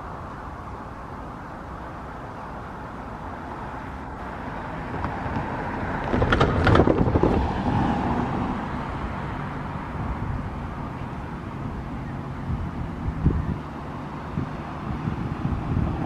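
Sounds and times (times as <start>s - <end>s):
electric train rumbling: 0.0s - 16.0s
wind noise on microphone: 4.7s - 16.0s.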